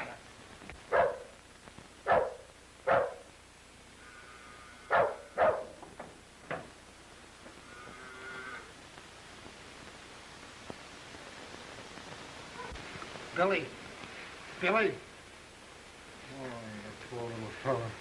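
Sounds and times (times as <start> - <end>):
faint film soundtrack noise: 0.0 - 18.0
dog barking: 0.9 - 1.3, 2.0 - 3.3, 4.9 - 5.8, 12.6 - 12.8.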